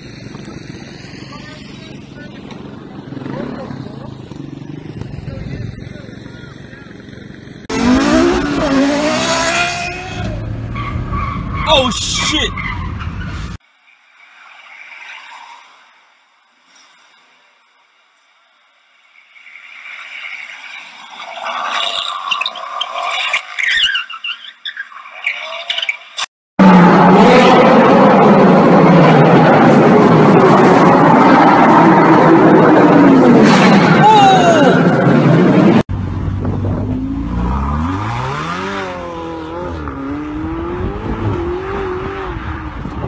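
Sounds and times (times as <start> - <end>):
car accelerating: 0.0 - 11.6, 26.6 - 43.0
sports car engines revving in tunnel: 7.6 - 10.7, 36.6 - 43.0.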